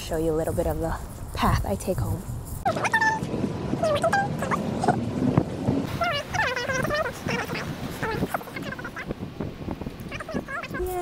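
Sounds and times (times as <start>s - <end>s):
woman making high wordless sounds: 10.2s - 11.0s.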